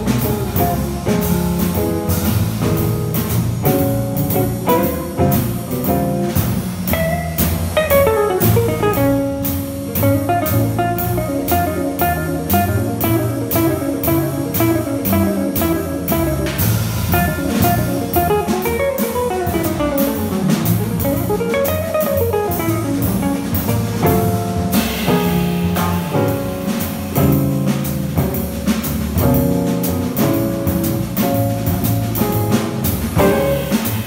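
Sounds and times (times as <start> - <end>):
cymbal beat: 0.0 - 34.0
plucked double bass: 0.0 - 34.0
electric guitar melody lines: 6.9 - 16.4.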